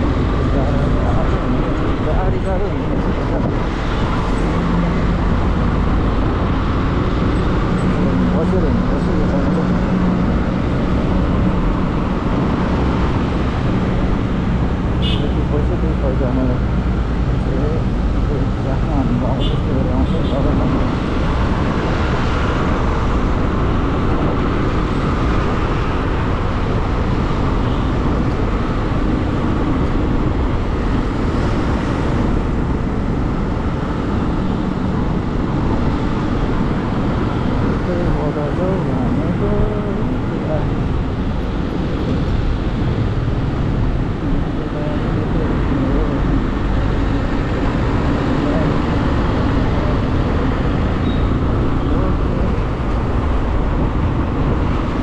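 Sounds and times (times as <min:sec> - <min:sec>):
wind and road noise: 0:00.0 - 0:55.0.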